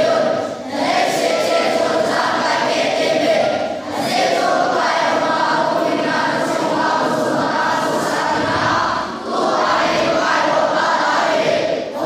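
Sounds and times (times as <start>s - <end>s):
group singing in unison: 0.0s - 12.0s.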